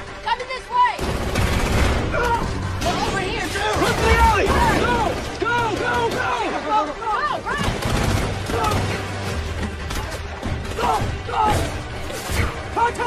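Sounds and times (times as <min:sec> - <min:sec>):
film music score: 0:00.0 - 0:13.0
gunfire: 0:01.0 - 0:06.6, 0:07.5 - 0:12.6.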